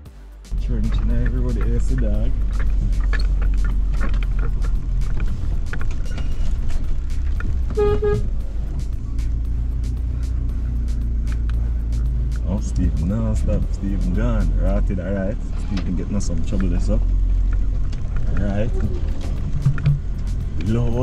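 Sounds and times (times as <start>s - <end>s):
vehicle engine rumble: 0.0s - 21.0s
vehicle horn toot: 7.7s - 8.4s
knocks and rattles: 15.8s - 21.0s.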